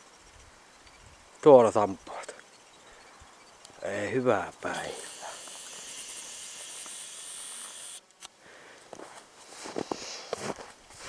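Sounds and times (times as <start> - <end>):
high outdoor hiss: 0.0 - 11.0.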